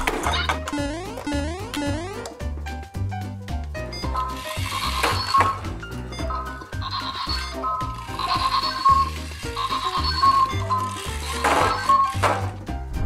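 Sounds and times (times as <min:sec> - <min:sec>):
bouncy cartoon music: 0:00.0 - 0:13.0.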